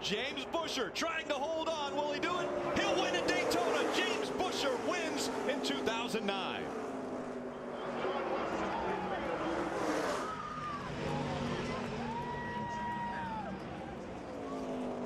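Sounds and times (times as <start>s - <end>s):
stock-car engines racing: 0.0s - 15.0s.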